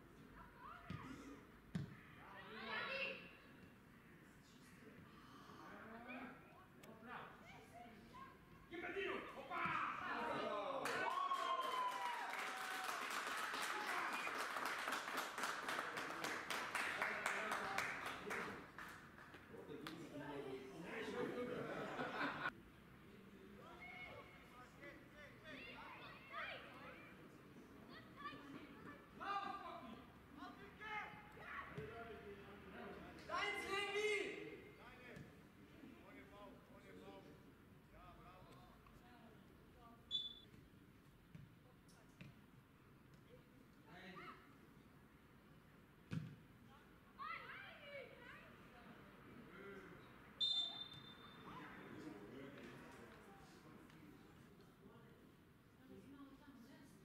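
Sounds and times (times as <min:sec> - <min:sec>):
referee's whistle blast: 0:50.4 - 0:51.5.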